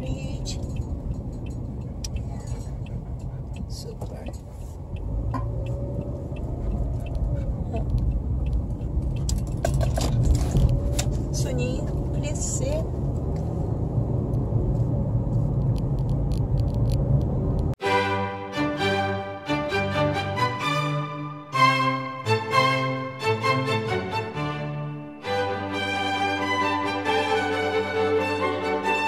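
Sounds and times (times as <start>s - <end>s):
road and engine rumble in car: 0.0s - 17.8s
light clicks and rattles: 0.3s - 4.6s
violin music: 17.8s - 29.0s.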